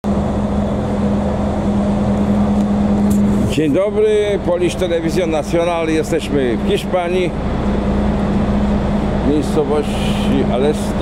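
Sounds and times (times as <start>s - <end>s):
diesel bus engine idling: 0.0s - 11.0s.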